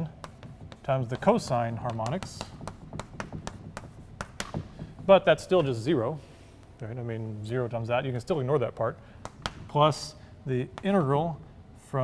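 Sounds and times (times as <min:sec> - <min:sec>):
chalk tapping on blackboard: 0:00.0 - 0:06.0, 0:08.8 - 0:10.1.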